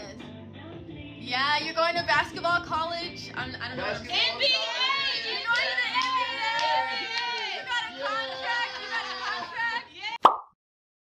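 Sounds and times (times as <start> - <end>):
voices: 3.6 - 10.2
plop sound effect: 10.2 - 10.6.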